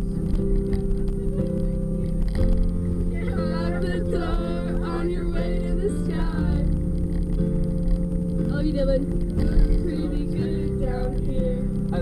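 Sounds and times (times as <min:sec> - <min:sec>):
passengers' voices: 0:00.0 - 0:07.0, 0:08.5 - 0:12.0
karaoke backing track over speakers: 0:00.0 - 0:12.0.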